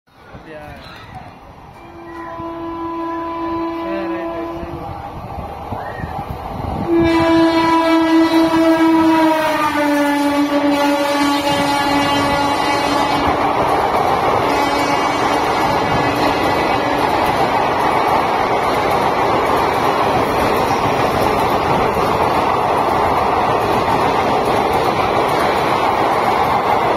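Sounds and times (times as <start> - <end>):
train wheels running on rails: 0.1 - 26.9
train horn blasts: 1.8 - 4.8, 6.8 - 13.4, 14.4 - 17.2.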